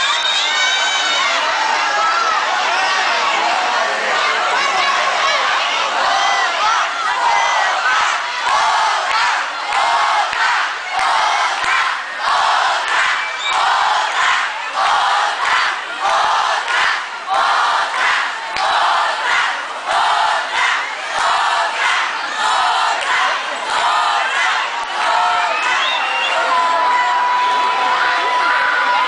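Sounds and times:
crowd chanting in unison: 0:01.4 - 0:29.0.

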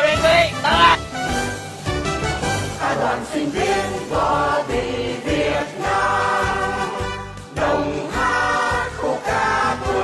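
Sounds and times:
rhythmic accompaniment: 0:00.0 - 0:10.0
choir singing held notes: 0:02.7 - 0:10.0.

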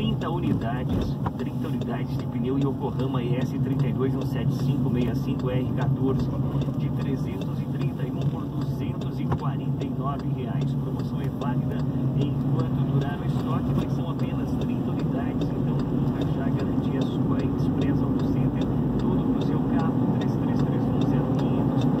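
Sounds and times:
car engine and tyre drone: 0:00.0 - 0:22.0.

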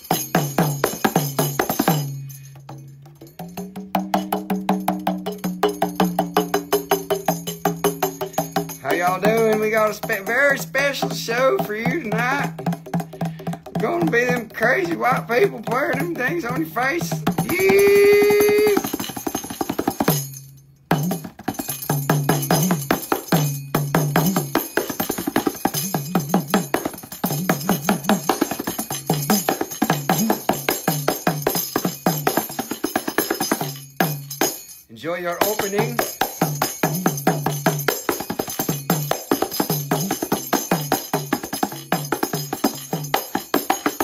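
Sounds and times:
frame drum played with fingers: 0:00.0 - 0:34.7, 0:35.4 - 0:44.0.

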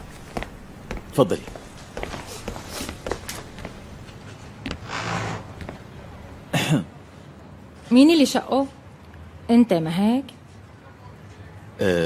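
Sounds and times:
person coughing: 0:06.5 - 0:06.9.

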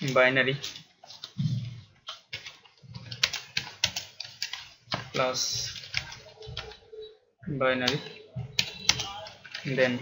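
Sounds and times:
computer keyboard typing: 0:00.0 - 0:01.4, 0:02.0 - 0:07.2, 0:07.8 - 0:10.0.

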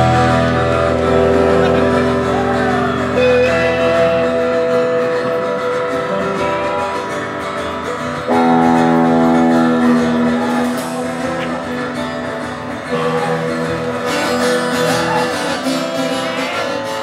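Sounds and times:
bass and drums: 0:00.0 - 0:17.0
electric guitar chords: 0:00.0 - 0:17.0.

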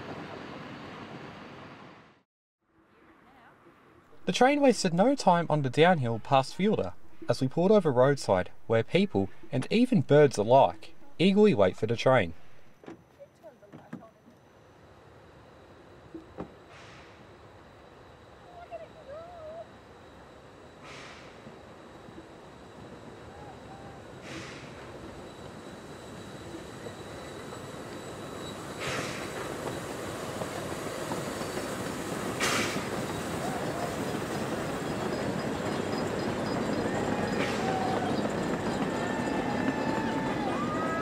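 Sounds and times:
train rumbling past: 0:00.0 - 0:02.2, 0:03.6 - 0:12.8, 0:14.6 - 0:41.0
short bursts of noise: 0:04.2 - 0:12.8
train wheels squealing: 0:17.1 - 0:41.0.

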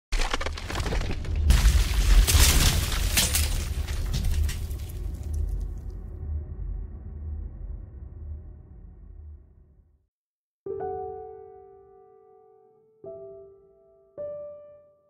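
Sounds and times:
stone cracking: 0:00.1 - 0:05.8
deep rumble: 0:00.6 - 0:10.0.

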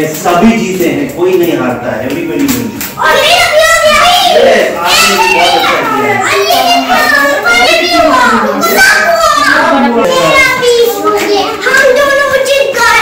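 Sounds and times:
children chattering and calling out: 0:02.1 - 0:13.0.

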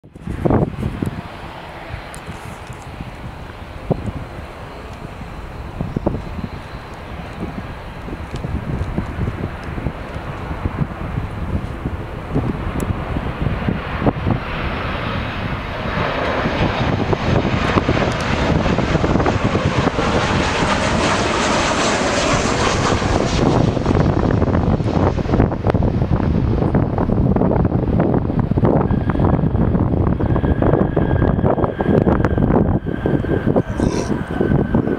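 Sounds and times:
deep rumble of aircraft rolling: 0:00.0 - 0:34.9
jet engine hiss: 0:00.3 - 0:14.0.

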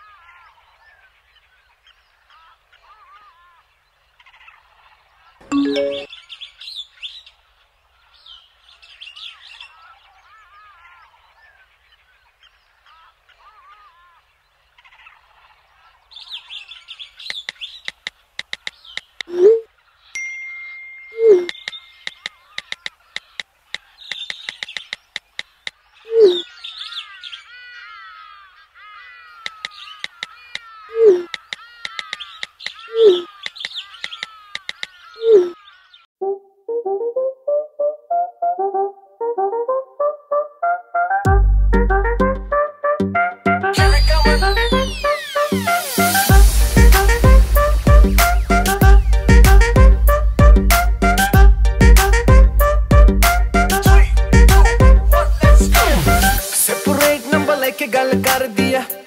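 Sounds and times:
birds chirping: 0:00.0 - 0:36.2, 0:43.3 - 0:59.0
sharp clicks: 0:17.3 - 0:19.3, 0:21.5 - 0:25.8, 0:29.4 - 0:30.7, 0:31.3 - 0:32.8, 0:33.4 - 0:35.0
lower falling bird call: 0:21.1 - 0:36.1, 0:43.8 - 0:59.0.

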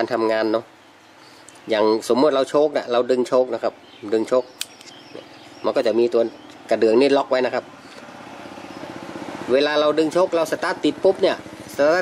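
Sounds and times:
small engine running: 0:04.9 - 0:12.0.

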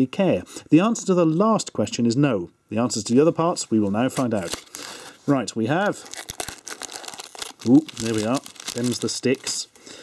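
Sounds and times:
foil lid peeling and crinkling: 0:05.9 - 0:09.6.

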